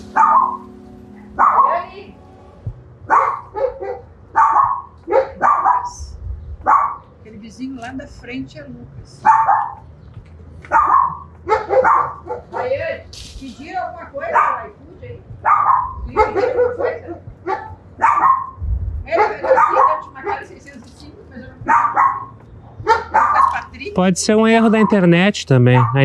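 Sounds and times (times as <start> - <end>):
steady low hum: 0.0 - 26.0
dog barking: 0.1 - 0.6, 1.2 - 1.9, 3.1 - 6.0, 6.6 - 7.1, 9.2 - 9.8, 10.6 - 13.0, 14.2 - 14.8, 15.4 - 20.8, 21.6 - 23.7, 24.6 - 25.0, 25.7 - 26.0.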